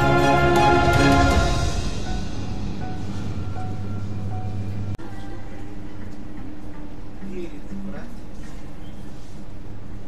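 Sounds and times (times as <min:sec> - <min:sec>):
low hum: 0:00.0 - 0:06.8
faint music: 0:00.0 - 0:10.0
store room noise: 0:00.0 - 0:10.0.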